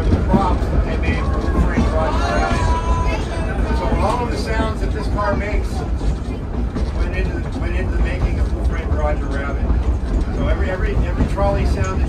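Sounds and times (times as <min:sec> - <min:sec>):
man talking: 0:00.0 - 0:05.9, 0:06.9 - 0:12.0
trolley car rumbling on track: 0:00.0 - 0:12.0.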